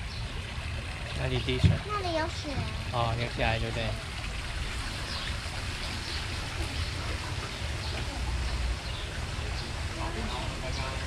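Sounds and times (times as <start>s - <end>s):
boat engine low rumble: 0.0s - 11.0s
water washing along boat hull: 0.0s - 11.0s.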